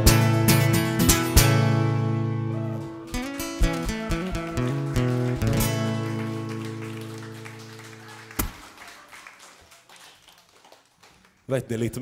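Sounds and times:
acoustic guitar chord ringing: 0.0 - 7.8.

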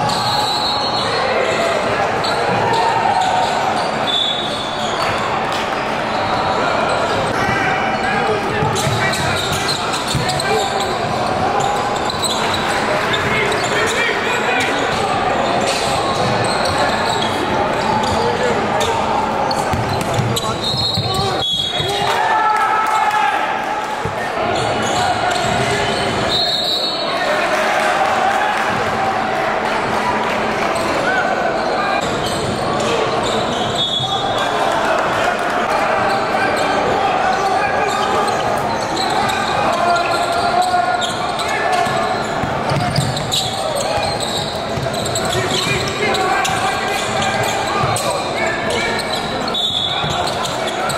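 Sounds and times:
hubbub of voices: 0.0 - 50.9
basketball bouncing: 8.6 - 10.4, 19.6 - 21.4, 42.4 - 46.6
shoes squeaking on hardwood: 19.5 - 21.6, 42.2 - 48.2.

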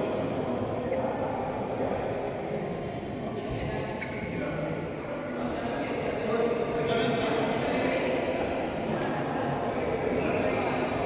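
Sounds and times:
echoing voices in sports hall: 0.0 - 11.0.

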